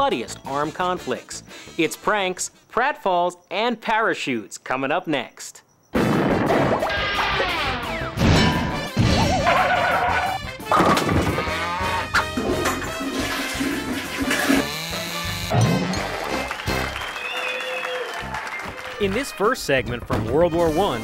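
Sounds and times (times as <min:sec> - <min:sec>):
tv theme music: 0:06.6 - 0:17.5, 0:18.1 - 0:21.0.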